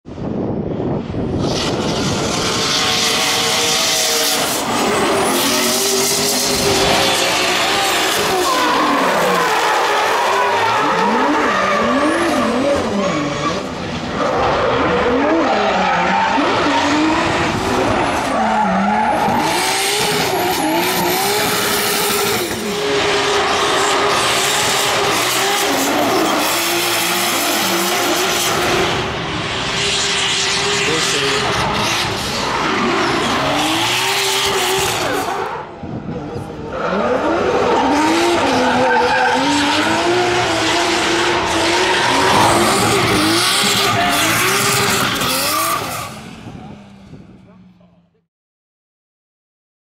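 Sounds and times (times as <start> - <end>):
car engines revving: 0.2 - 47.6.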